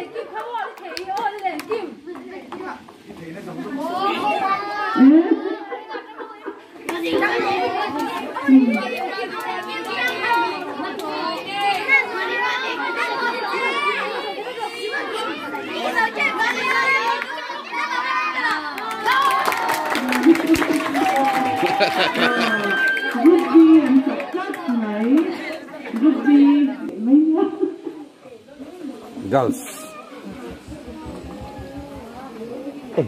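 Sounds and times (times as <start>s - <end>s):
children chattering and calling out: 0.0s - 33.0s.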